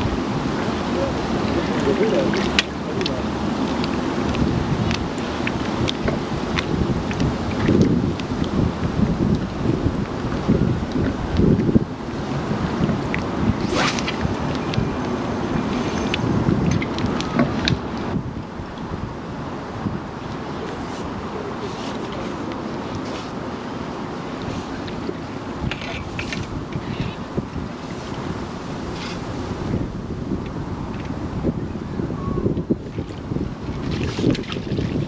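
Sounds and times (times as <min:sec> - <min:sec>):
wind buffeting microphone: 0:00.0 - 0:22.9, 0:24.0 - 0:35.0.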